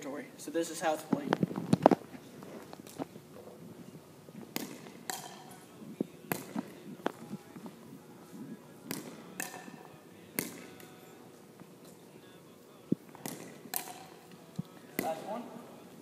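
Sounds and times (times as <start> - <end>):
paddle hitting plastic ball: 4.5 - 5.6, 6.3 - 6.8, 8.9 - 10.8, 13.2 - 14.2, 15.0 - 15.3
ball bouncing on hardwood floor: 4.6 - 5.4.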